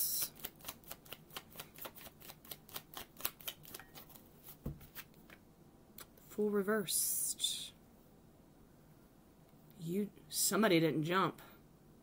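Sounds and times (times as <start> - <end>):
cards being shuffled: 0.2 - 5.4.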